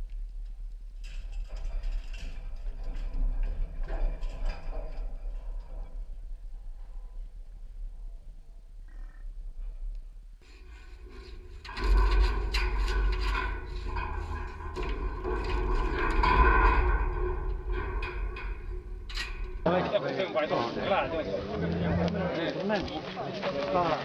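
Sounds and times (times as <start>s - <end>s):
deep rumble: 0.0s - 19.7s
hooves on ground: 18.4s - 24.0s.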